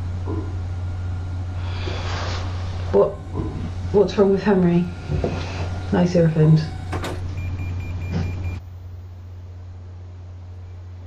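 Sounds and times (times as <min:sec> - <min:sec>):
faint low hum: 0:00.0 - 0:11.0
mri scanner drone: 0:00.0 - 0:11.0.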